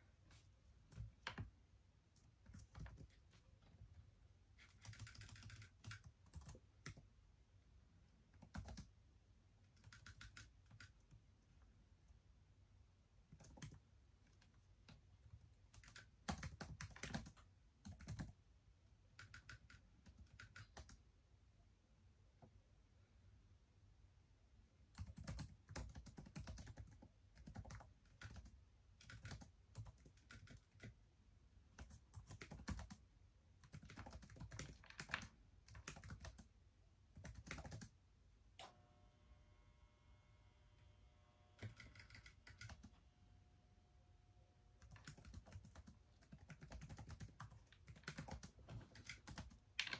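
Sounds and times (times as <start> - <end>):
laptop keyboard typing: 0.8 - 1.6, 2.2 - 3.4, 4.6 - 7.1, 8.3 - 9.0, 9.6 - 11.2, 13.2 - 18.4, 19.0 - 21.0, 24.9 - 31.0, 31.7 - 36.5, 37.1 - 38.0, 41.6 - 43.0, 44.7 - 49.9
faint steady tone: 38.1 - 46.4.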